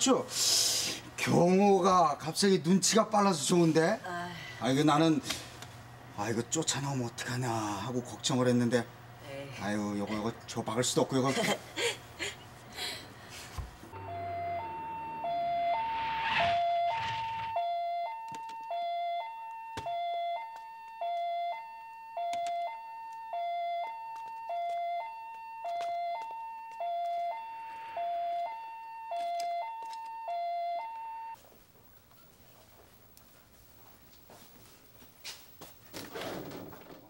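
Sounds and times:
vehicle noise: 0:13.8 - 0:17.6
ambulance siren hi-lo wail: 0:13.9 - 0:31.4.

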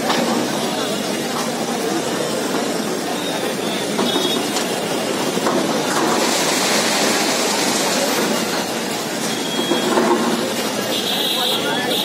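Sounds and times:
crowd noise: 0:00.0 - 0:12.0
falling rubble crashing: 0:05.6 - 0:08.7.

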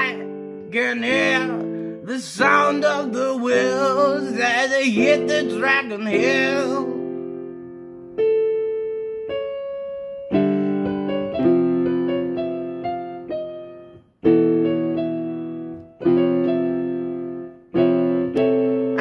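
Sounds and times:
piano chords ringing: 0:00.0 - 0:19.0.

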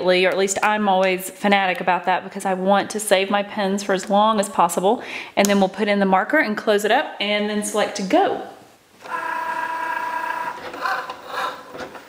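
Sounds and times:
cutting machine motors whining: 0:09.0 - 0:11.8.

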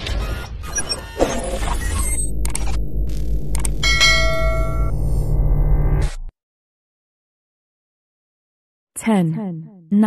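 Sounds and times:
deep bass drone: 0:02.3 - 0:06.3
bell-like ring: 0:03.8 - 0:04.9.

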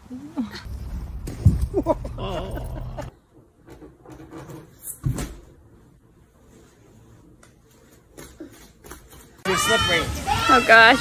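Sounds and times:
people laughing: 0:01.7 - 0:03.1
loud excited voices: 0:09.5 - 0:11.0.

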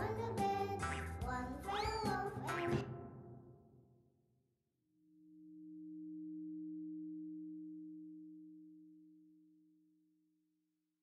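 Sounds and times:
low two-note tone: 0:05.1 - 0:09.8.

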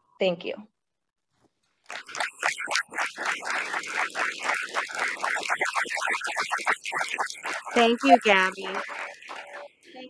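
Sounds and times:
audience applauding: 0:01.9 - 0:06.6.

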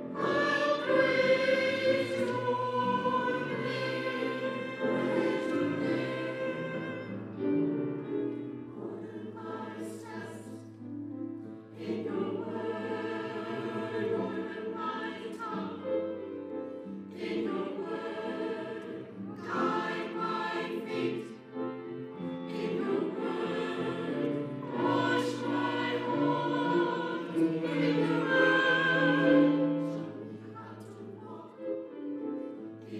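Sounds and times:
mixed choir singing: 0:00.0 - 0:32.9.

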